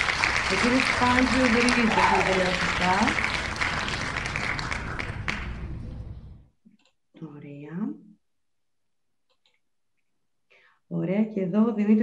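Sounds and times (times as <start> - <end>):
recorded applause: 0.0 - 6.4
person speaking: 0.5 - 3.2.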